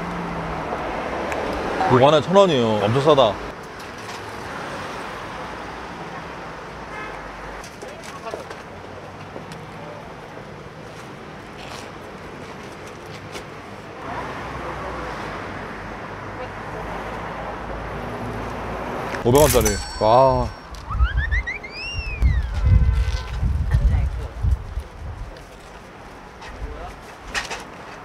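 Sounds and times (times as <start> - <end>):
street traffic: 0.0 - 28.0.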